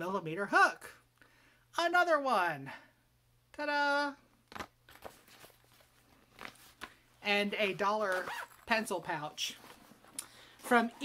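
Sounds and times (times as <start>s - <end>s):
plastic pouch rustling: 4.5s - 11.0s.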